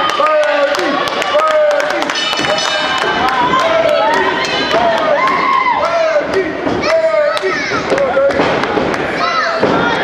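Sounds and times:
voices shouting in a hall: 0.0 - 10.0.

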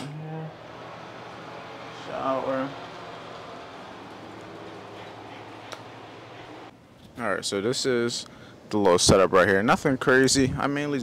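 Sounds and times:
indoor hum and hiss: 0.0 - 11.0.

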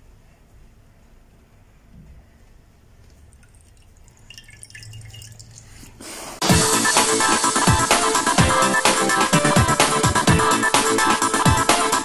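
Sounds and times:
wet dripping and squelching: 3.0 - 6.0
electronic dance music: 6.4 - 12.0.

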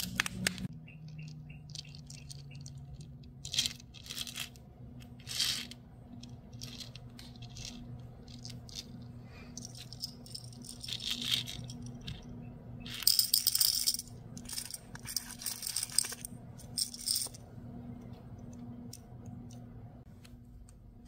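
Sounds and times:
rhinestones clinking on plastic: 0.0 - 17.4.

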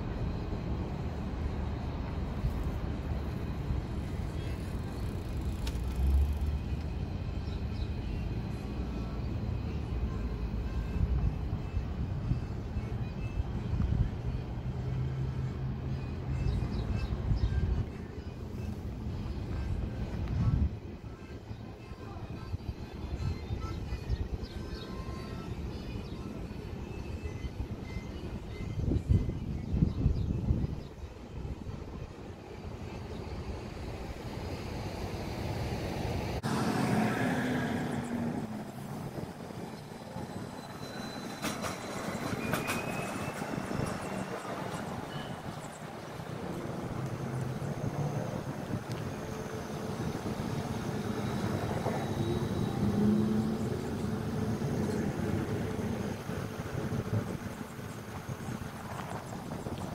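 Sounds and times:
vehicle traffic passing: 0.0 - 11.0, 32.6 - 41.2, 42.8 - 59.9.

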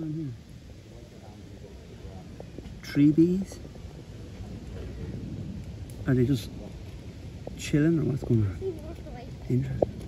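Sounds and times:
low steady rumbling: 0.0 - 10.0.

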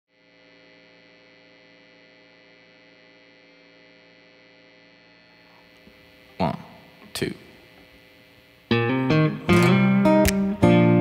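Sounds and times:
electrical mains hum: 0.1 - 11.0.

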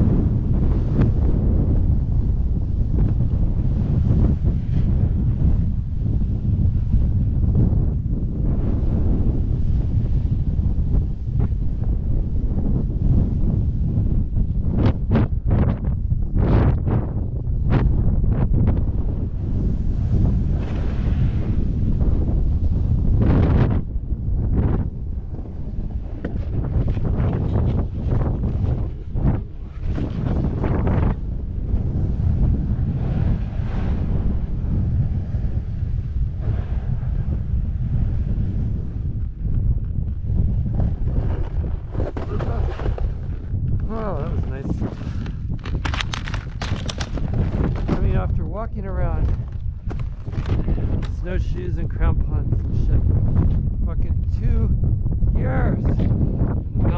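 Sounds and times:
wind rumbling on microphone: 0.0 - 56.9.

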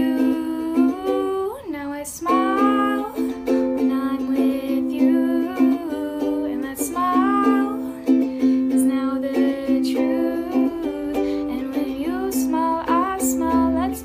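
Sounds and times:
girl singing: 0.0 - 14.0.

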